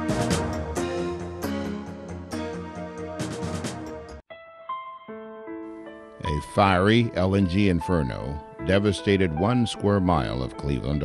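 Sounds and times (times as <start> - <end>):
soundtrack music sustained chords: 0.0 - 11.0.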